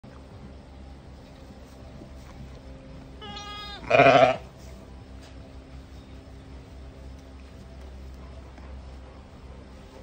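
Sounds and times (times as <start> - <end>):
lamb bleating: 3.2 - 4.5.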